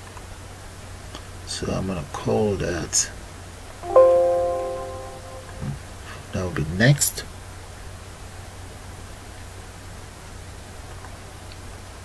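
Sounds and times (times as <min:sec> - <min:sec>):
computer notification chime: 0:03.8 - 0:05.7.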